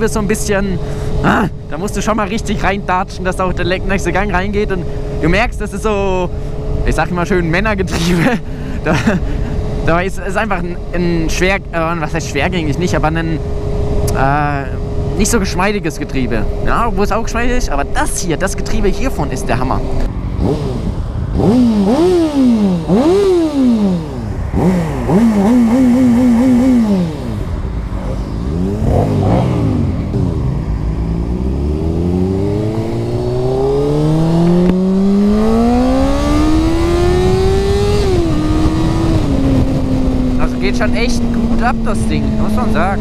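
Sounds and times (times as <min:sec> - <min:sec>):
motorcycle engine revving: 0:00.0 - 0:43.0.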